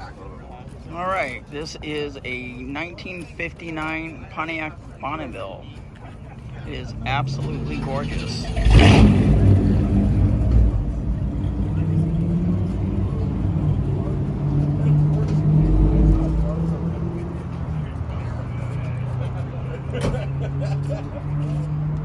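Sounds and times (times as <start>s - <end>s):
car engine idling: 5.9s - 20.6s.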